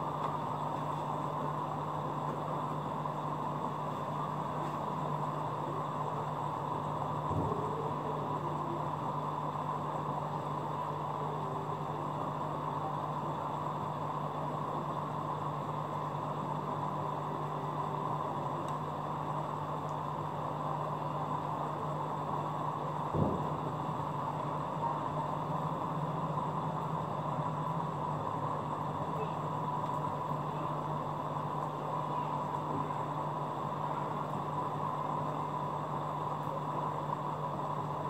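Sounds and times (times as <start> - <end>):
aquarium pump humming: 0.0 - 38.0.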